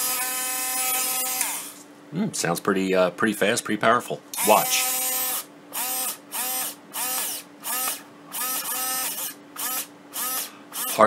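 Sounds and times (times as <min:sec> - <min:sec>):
rotary tool whining: 0:00.0 - 0:01.8, 0:04.4 - 0:11.0.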